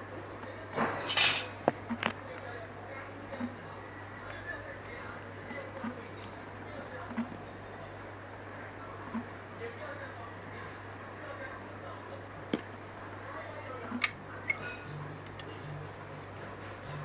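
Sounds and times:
steady low hum: 0:01.4 - 0:17.0.

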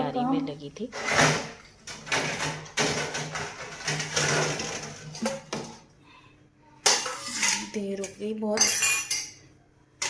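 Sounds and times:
metal utensils clattering: 0:00.9 - 0:05.8, 0:06.8 - 0:09.4
metal utensils clinking: 0:06.8 - 0:09.4.

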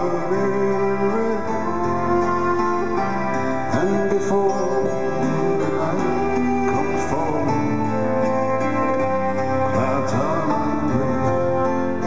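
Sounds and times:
guitar notes: 0:00.0 - 0:12.0.

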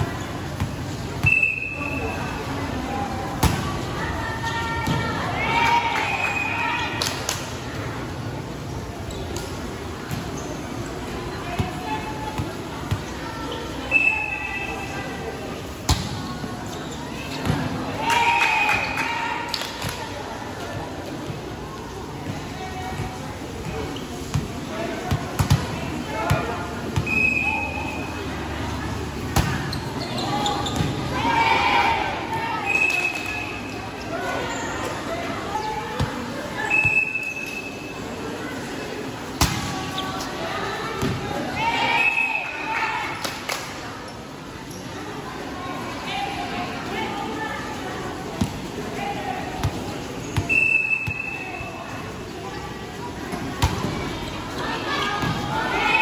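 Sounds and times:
whistle blasts: 0:01.2 - 0:02.0, 0:13.9 - 0:14.8, 0:27.0 - 0:28.0, 0:32.6 - 0:33.6, 0:36.6 - 0:37.8, 0:50.5 - 0:51.7.

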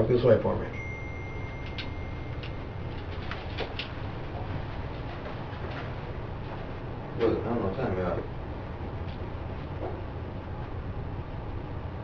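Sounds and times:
low room hum: 0:00.0 - 0:12.0
high-pitched tone: 0:00.7 - 0:03.6.

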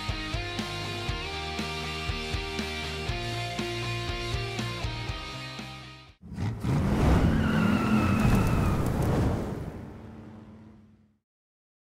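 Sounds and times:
high tyre squeal: 0:07.0 - 0:08.9.

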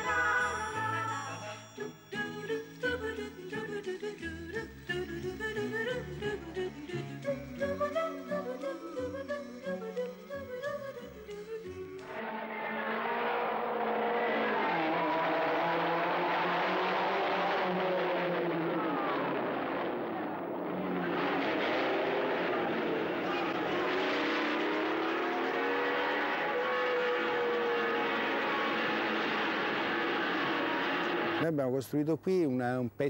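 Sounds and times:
racing cars passing at speed: 0:12.1 - 0:31.4.

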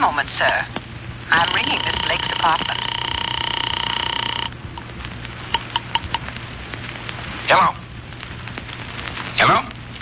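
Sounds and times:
phone line clicks and crackle: 0:00.7 - 0:07.2
telephone ringing tone: 0:01.3 - 0:04.9.

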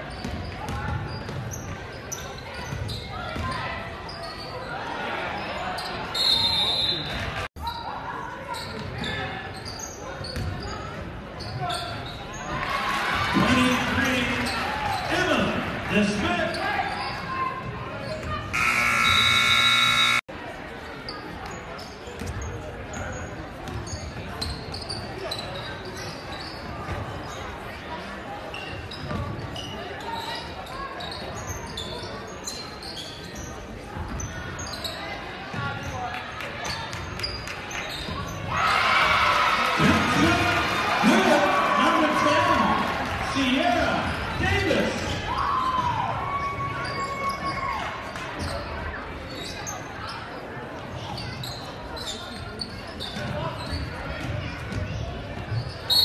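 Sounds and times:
crowd cheering: 0:18.5 - 0:20.3, 0:38.5 - 0:44.1
scoreboard horn: 0:18.6 - 0:20.2.

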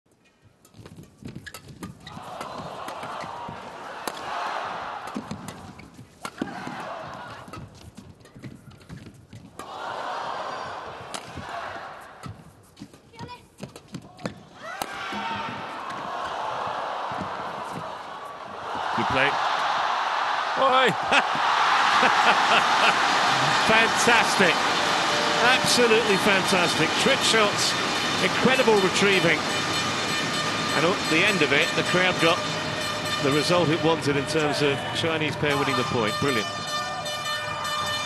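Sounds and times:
crowd cheering and shouting: 0:02.1 - 0:05.3, 0:06.4 - 0:07.5, 0:09.6 - 0:12.0, 0:14.6 - 0:37.9
racket striking shuttlecock: 0:04.0 - 0:04.3
footwork on court: 0:10.6 - 0:19.9.

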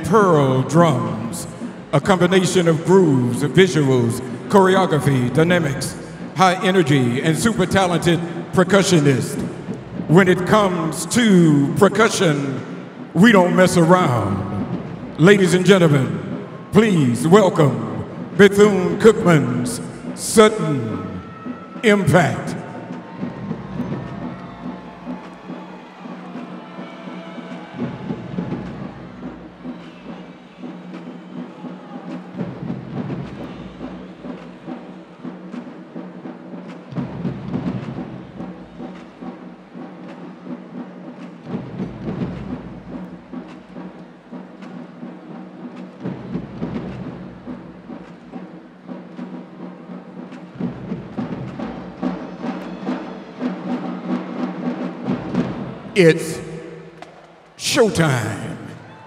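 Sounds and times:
marching drumline percussion: 0:00.0 - 0:59.0.

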